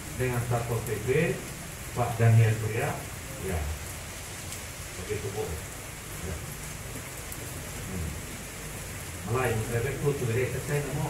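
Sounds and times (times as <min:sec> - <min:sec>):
background hiss: 0:00.0 - 0:11.0
faint low murmur: 0:04.9 - 0:11.0.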